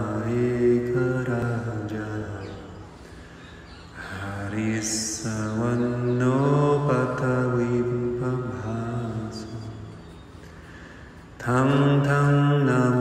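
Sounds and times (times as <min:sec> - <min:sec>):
deep male voice chanting: 0:00.0 - 0:03.2, 0:03.9 - 0:10.0, 0:11.4 - 0:13.0.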